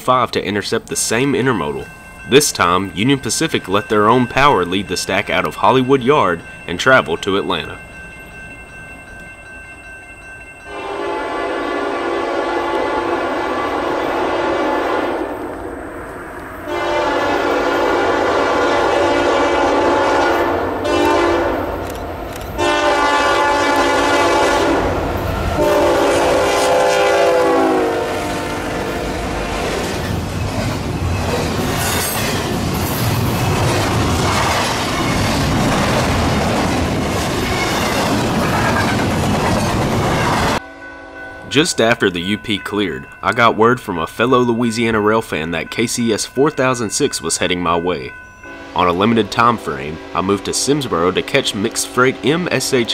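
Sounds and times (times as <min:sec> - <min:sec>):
train cars rumbling and clattering: 0:00.0 - 0:40.6
locomotive air horn blasts: 0:10.7 - 0:15.4, 0:16.6 - 0:21.7, 0:22.6 - 0:29.7, 0:48.5 - 0:48.8.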